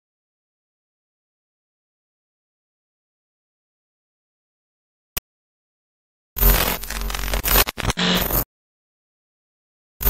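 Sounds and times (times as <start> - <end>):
harsh distorted noise burst: 6.4 - 8.4.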